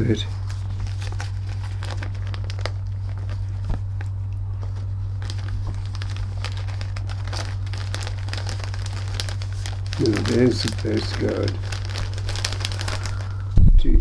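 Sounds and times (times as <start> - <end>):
papers rustling and crinkling: 0.0 - 13.6
steady low hum: 0.0 - 14.0.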